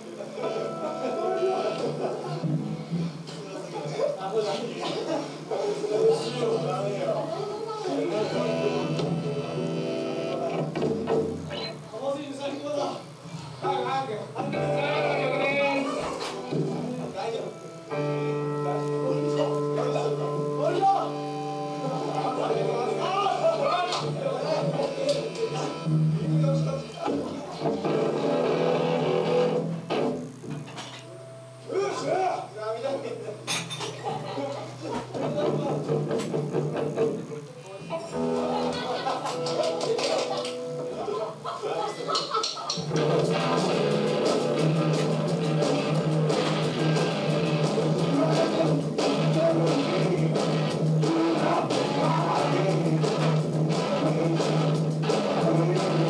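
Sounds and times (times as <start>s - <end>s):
voices over music: 5.6s - 10.6s, 37.1s - 56.0s
live band music: 8.1s - 11.7s, 14.4s - 23.4s, 27.2s - 31.0s, 42.7s - 56.0s.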